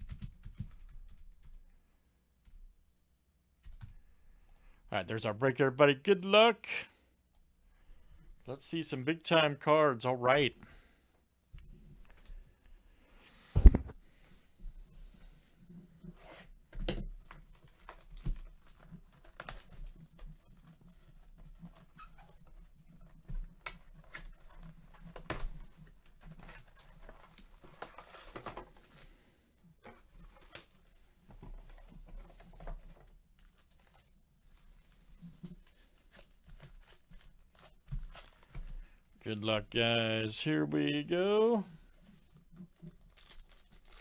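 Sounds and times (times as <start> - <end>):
plastic wrap crinkling and tearing: 17.3 - 29.1, 30.1 - 31.2, 33.4 - 38.8, 41.8 - 44.0
foil packs rustling: 30.0 - 31.2, 32.2 - 39.0, 40.8 - 44.0.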